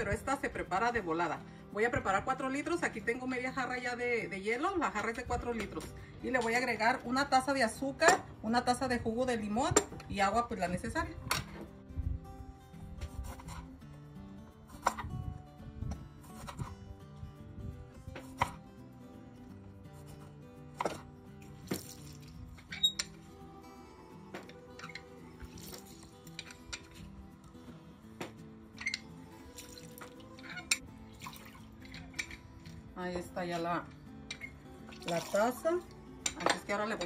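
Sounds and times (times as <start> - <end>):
background music with steady beat: 11.0 - 37.0
knife cutting on wooden board: 13.0 - 13.8, 16.2 - 16.8, 18.1 - 18.7
juice dripping into glass: 21.4 - 22.6, 24.9 - 27.0, 28.9 - 32.8.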